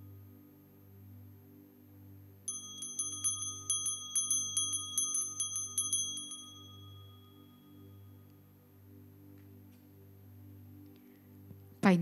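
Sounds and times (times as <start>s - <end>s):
soft sustained music: 0.0s - 12.0s
altar bells jingling: 2.5s - 7.9s.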